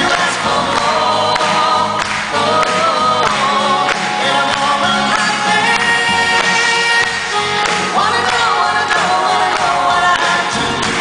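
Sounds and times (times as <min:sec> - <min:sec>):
live band playing: 0:00.0 - 0:11.0
man and woman singing duet: 0:00.0 - 0:11.0.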